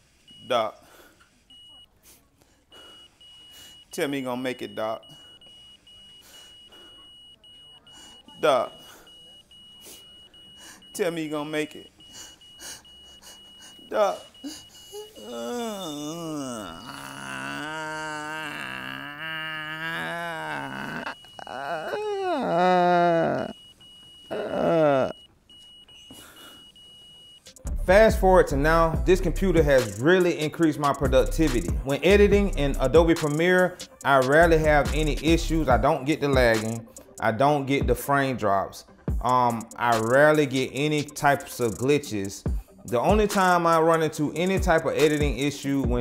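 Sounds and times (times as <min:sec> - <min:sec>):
heart monitor flatline tone: 0:01.3 - 0:01.9, 0:02.7 - 0:37.2, 0:42.4 - 0:43.3
man wailing: 0:13.9 - 0:23.5, 0:24.3 - 0:25.2.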